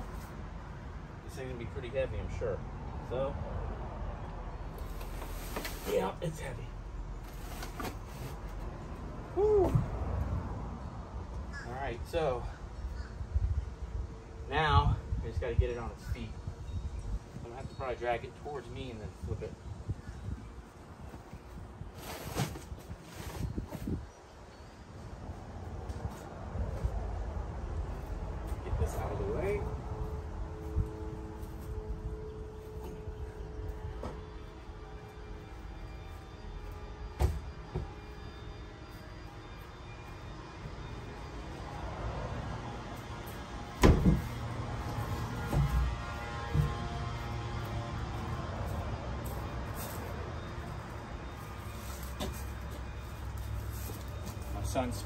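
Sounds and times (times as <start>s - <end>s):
knocks and thuds: 43.8s - 44.3s.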